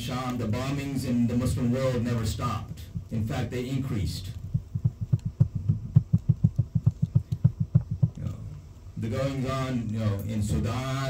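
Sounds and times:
microphone handling thumps: 2.7 - 8.4.

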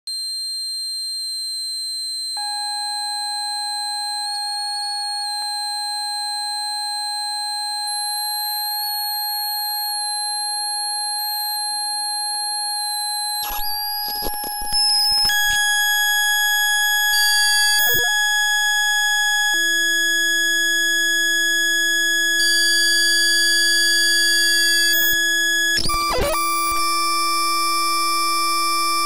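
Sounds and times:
lower electronic tone: 13.6 - 21.1.

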